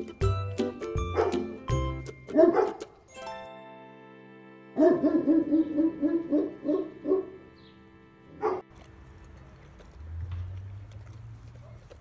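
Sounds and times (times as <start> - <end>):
background music: 0.0 - 9.5
dog barking: 1.2 - 1.5, 2.3 - 2.8, 4.8 - 7.4, 8.4 - 8.7, 11.5 - 12.0.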